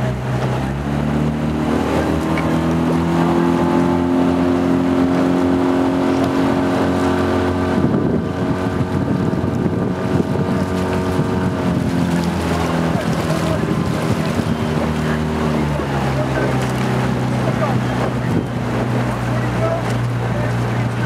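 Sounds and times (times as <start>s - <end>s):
outboard motor running: 0.0s - 21.0s.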